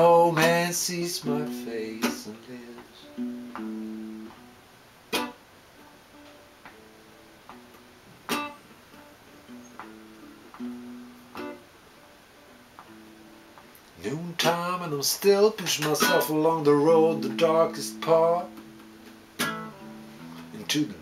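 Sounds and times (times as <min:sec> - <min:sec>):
solo acoustic guitar: 0:00.0 - 0:21.0.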